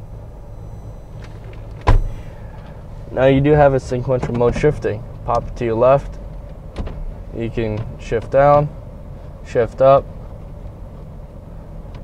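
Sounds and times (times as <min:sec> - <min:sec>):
truck engine idling: 0:00.0 - 0:12.0.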